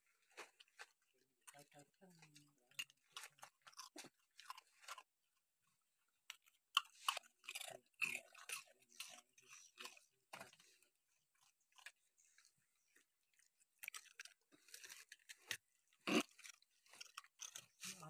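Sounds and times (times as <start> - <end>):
dogs chewing and biting: 0.2 - 18.0.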